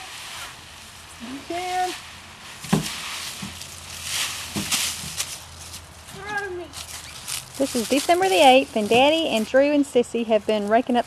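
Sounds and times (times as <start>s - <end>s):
dry leaves crunching: 0.0s - 9.8s
thump: 2.6s - 3.6s, 4.5s - 4.8s.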